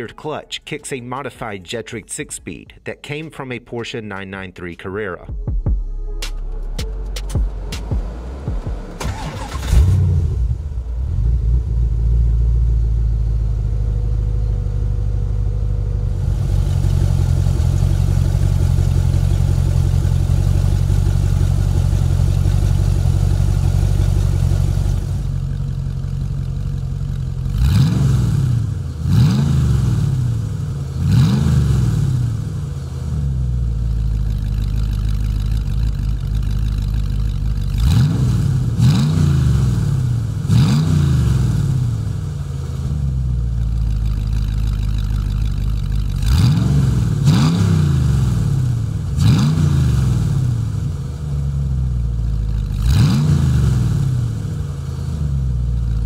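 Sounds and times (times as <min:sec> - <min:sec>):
engine idling and revving: 0:06.6 - 0:56.0.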